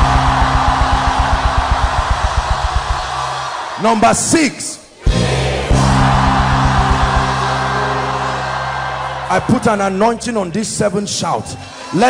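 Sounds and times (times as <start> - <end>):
keyboard sustained chord: 0.0 - 2.8, 5.7 - 10.8
drum hits: 0.0 - 3.6, 5.1 - 7.9
crowd shouting: 0.0 - 3.9, 5.0 - 10.2.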